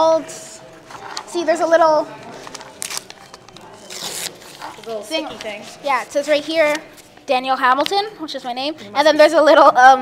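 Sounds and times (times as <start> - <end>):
book pages turning: 2.2 - 5.8, 6.5 - 7.3.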